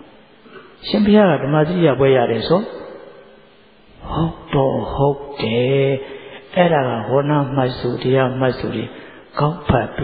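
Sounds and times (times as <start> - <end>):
man intoning a sermon: 0.6 - 10.0.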